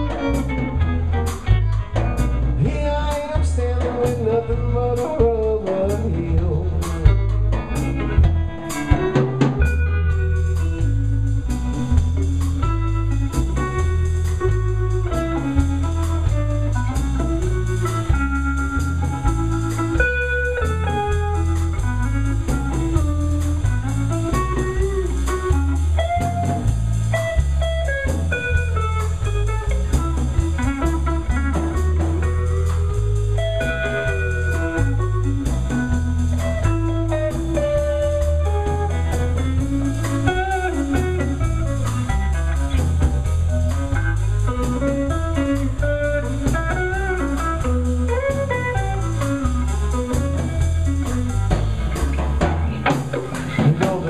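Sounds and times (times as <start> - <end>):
blues band playing: 0.0 - 54.0
electric guitar solo: 0.0 - 54.0.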